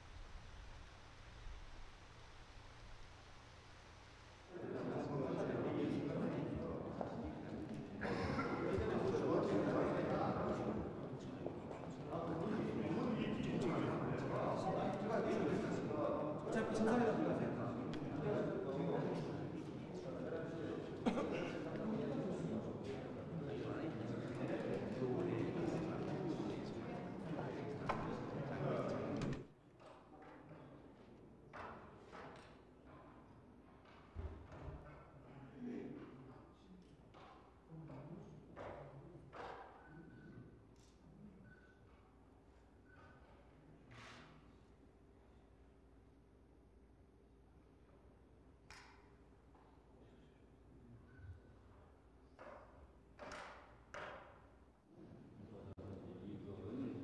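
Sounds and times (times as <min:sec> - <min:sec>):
soft hiss: 0:00.0 - 0:04.6
murmur of voices: 0:04.5 - 0:31.5.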